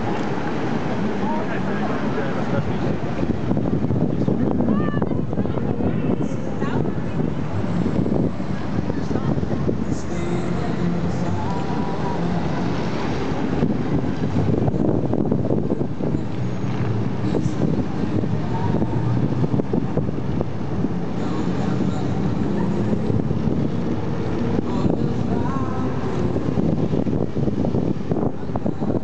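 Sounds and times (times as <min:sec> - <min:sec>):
crowd voices: 0:00.0 - 0:29.0
street traffic: 0:00.0 - 0:29.0
wind noise on microphone: 0:00.0 - 0:29.0.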